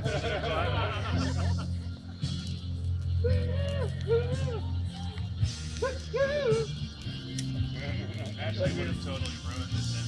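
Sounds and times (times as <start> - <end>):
music with bass and singing: 0.0 - 10.0.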